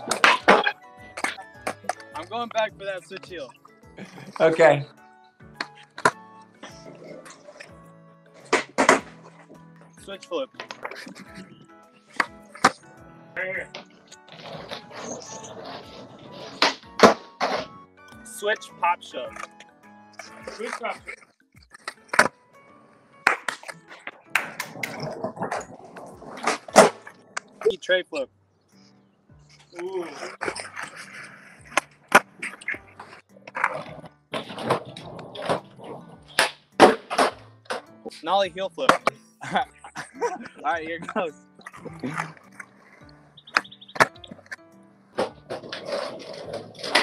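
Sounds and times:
skateboard pop: 0.0 - 2.2, 8.5 - 9.2, 16.4 - 17.7, 23.2 - 27.5, 33.5 - 37.9
skateboard clacking on concrete: 0.0 - 2.3, 8.4 - 9.5, 20.2 - 22.4, 23.2 - 27.7, 29.7 - 37.9, 45.2 - 47.0
background music: 0.0 - 47.0
skateboard wheel rumble: 13.6 - 17.8, 23.2 - 27.7, 29.6 - 37.9, 41.6 - 47.0
skateboard snap on concrete: 23.2 - 25.0, 36.3 - 37.9.

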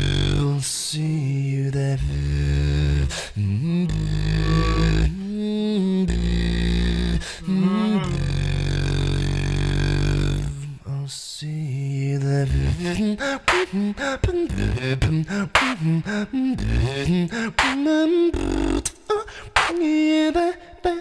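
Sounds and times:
deep vocal bass: 0.0 - 21.0
man singing long notes: 0.0 - 21.0
beatboxed percussion hits: 13.4 - 13.8, 14.6 - 16.0, 16.7 - 19.9.

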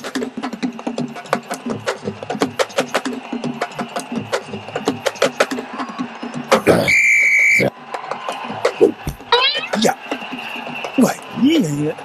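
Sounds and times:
rapid percussion: 0.0 - 6.8
referee's whistle blast: 6.7 - 7.7.

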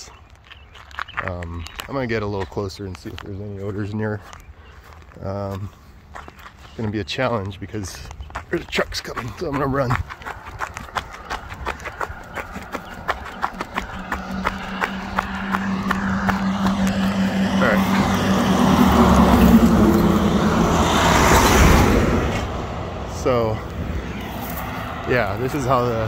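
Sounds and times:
running footsteps on road: 0.0 - 22.9
truck passing: 0.0 - 26.0.

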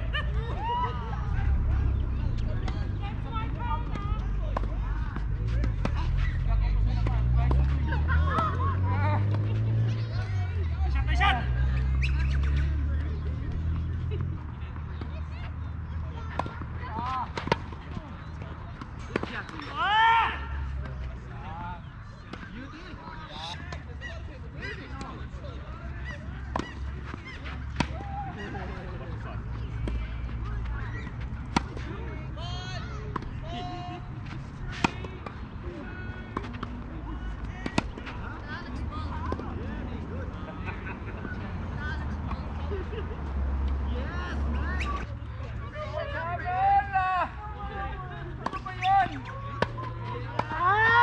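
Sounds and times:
tennis balls struck by rackets: 1.9 - 10.6, 11.7 - 19.9, 22.1 - 41.4, 48.0 - 51.0
birds calling: 25.8 - 29.0
tennis ball struck by racket: 26.4 - 28.0, 29.6 - 32.1, 34.2 - 35.5, 37.4 - 38.2, 48.4 - 50.6.

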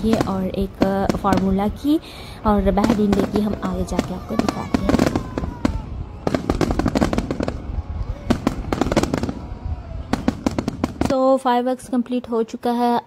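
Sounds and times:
faint voices: 0.0 - 10.5
fireworks bangs and crackles: 0.0 - 11.6.

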